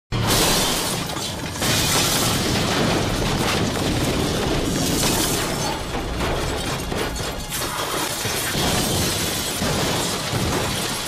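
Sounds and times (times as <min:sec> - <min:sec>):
shattering debris sound effect: 0:00.1 - 0:11.0.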